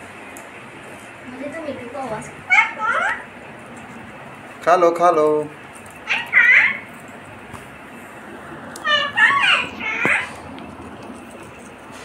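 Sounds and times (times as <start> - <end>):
parakeet calls: 2.3 - 3.3, 6.0 - 7.0, 8.8 - 10.5.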